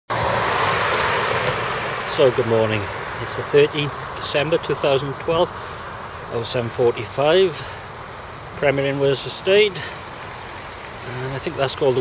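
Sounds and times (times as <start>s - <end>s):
road traffic rushing: 0.1s - 12.0s.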